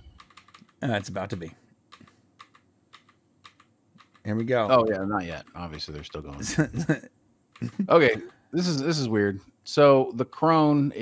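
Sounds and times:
computer keyboard clicking: 0.1 - 1.3, 1.9 - 4.5.

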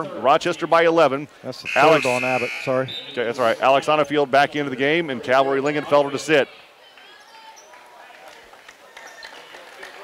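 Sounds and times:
distant crowd voices: 0.0 - 10.0.

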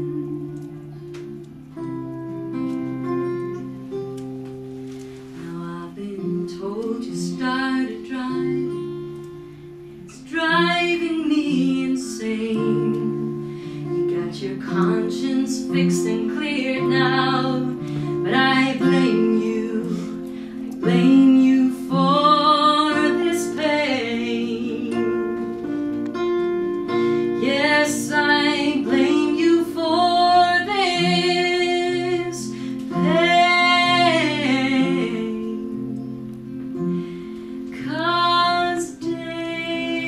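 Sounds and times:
woman singing: 0.0 - 0.9, 5.3 - 9.1, 10.0 - 25.8, 27.0 - 36.3, 37.6 - 40.0
acoustic guitar chords: 0.0 - 40.0.

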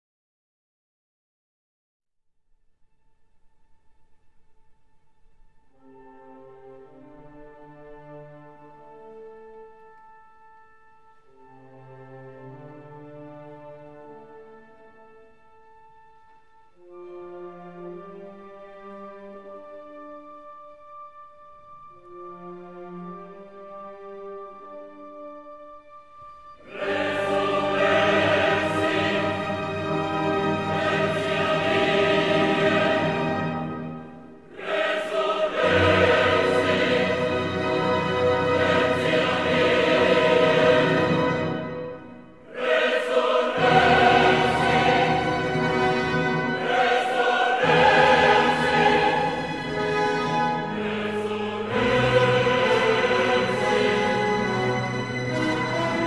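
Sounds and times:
choir singing with orchestra: 26.4 - 56.0.

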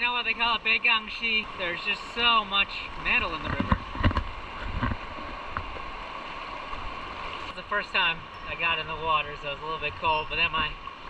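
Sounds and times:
river water rushing over rapids: 0.0 - 11.0.

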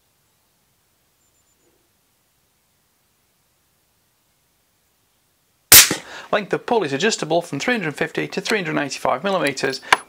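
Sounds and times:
suppressed rifle shot: 5.7 - 6.1.

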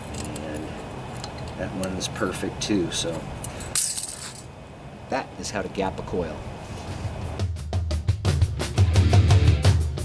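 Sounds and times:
metal blades jingling: 3.4 - 4.5.

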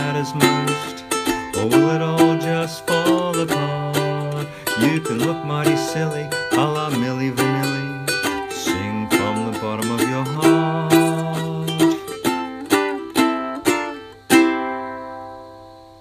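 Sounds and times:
ukulele strumming chords: 0.0 - 16.0.

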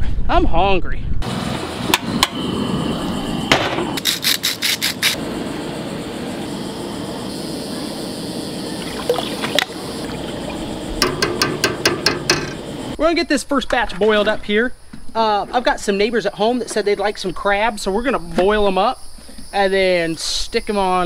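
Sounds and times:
steady burner hiss: 1.2 - 21.0.

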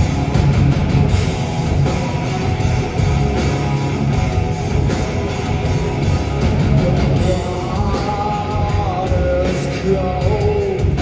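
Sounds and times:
loud rock band playing: 0.0 - 11.0.

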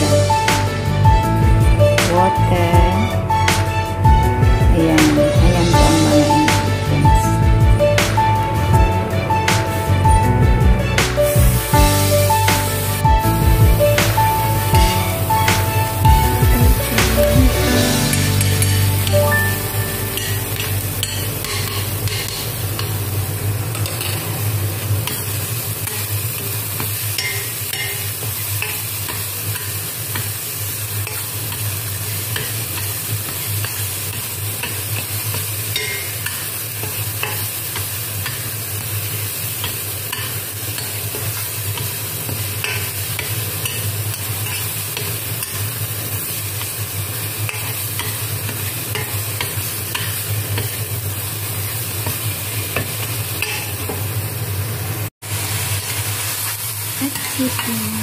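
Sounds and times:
garlic sizzling in oil: 8.0 - 58.0
metal spoon scraping a wok: 20.2 - 22.9, 31.0 - 37.5, 39.6 - 45.8.

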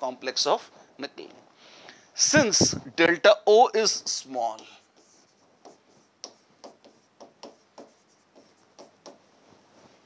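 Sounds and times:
pen writing on board: 4.5 - 9.2.

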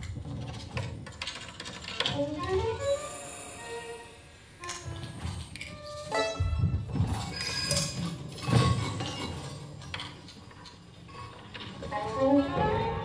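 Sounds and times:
held violin notes: 2.2 - 6.9
percussion clinks and knocks: 4.8 - 12.1.

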